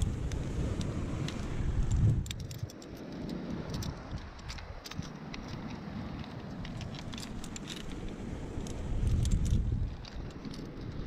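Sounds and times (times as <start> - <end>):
climbing gear clinking: 0.0 - 11.0
wind buffeting microphone: 0.0 - 11.0.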